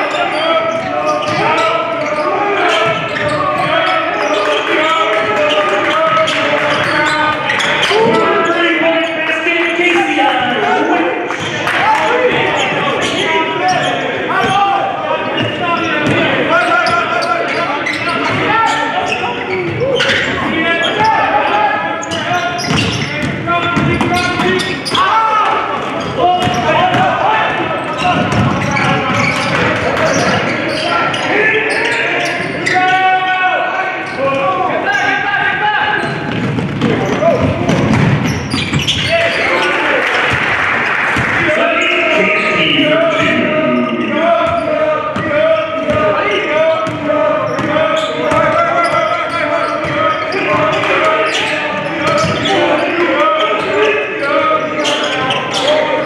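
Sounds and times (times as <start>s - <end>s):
players shouting: 0.0s - 56.0s
basketball bouncing on wooden floor: 28.1s - 29.6s, 36.3s - 39.0s.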